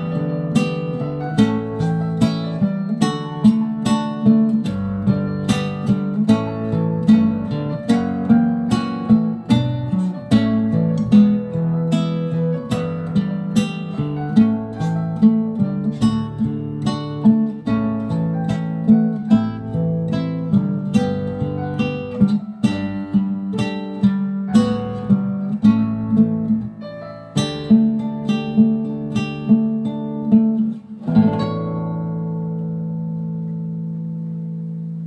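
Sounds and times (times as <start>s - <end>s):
fingerpicked classical guitar: 0.0s - 35.0s.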